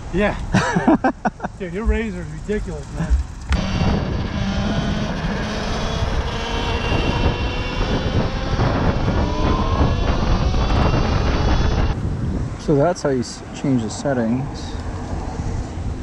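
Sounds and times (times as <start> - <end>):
wind and road noise: 0.0 - 16.0.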